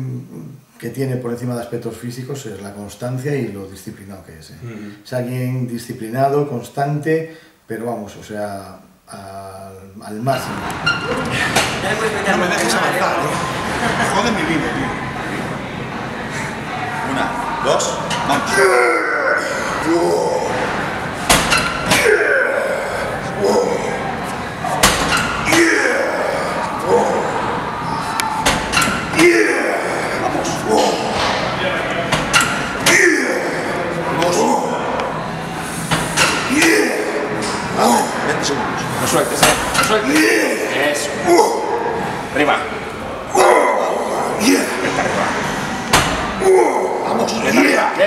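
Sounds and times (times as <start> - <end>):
exercise machine clanking: 10.5 - 11.8, 21.2 - 22.4, 24.8 - 27.3, 28.2 - 33.4, 39.4 - 40.5
man grunting and straining: 18.5 - 20.7, 21.9 - 24.1, 25.4 - 27.5, 29.1 - 31.2, 32.8 - 35.0, 36.4 - 38.3, 43.3 - 45.0, 46.4 - 48.0.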